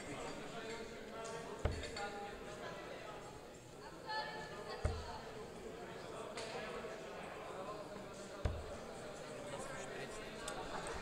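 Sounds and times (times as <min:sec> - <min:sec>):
low background chatter: 0:00.0 - 0:11.0
dart thudding into dartboard: 0:08.4 - 0:08.8.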